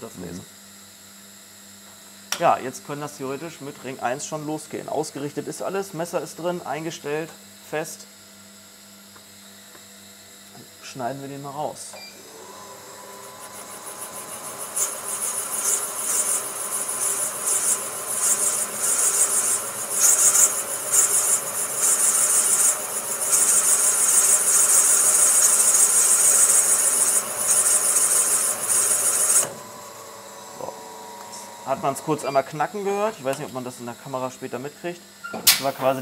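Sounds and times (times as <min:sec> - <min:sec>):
high-pitched metal cutting: 0:12.8 - 0:33.4.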